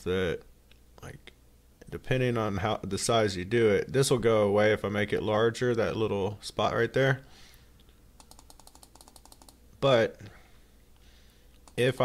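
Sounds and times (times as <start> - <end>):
computer mouse clicks: 8.2 - 9.6, 11.5 - 11.9.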